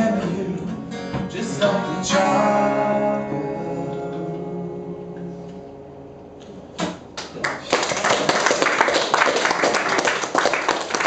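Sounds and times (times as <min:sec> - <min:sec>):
acoustic guitar chord ringing: 0:00.0 - 0:06.4
audience applause: 0:07.2 - 0:11.0.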